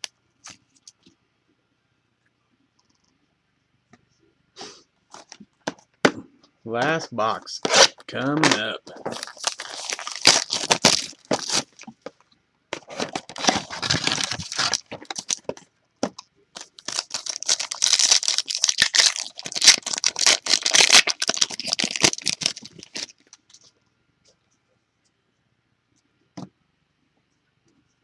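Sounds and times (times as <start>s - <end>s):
foil packaging tearing and crinkling: 7.6s - 12.0s, 12.8s - 15.5s, 16.6s - 23.4s.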